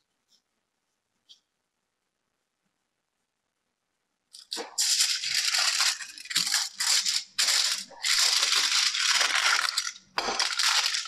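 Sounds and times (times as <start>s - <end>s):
aluminium foil crinkling: 4.3s - 11.0s.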